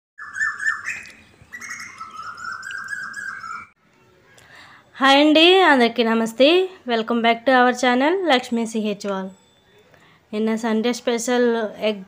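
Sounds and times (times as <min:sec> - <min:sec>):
birds chirping and tweeting: 0:00.2 - 0:04.9.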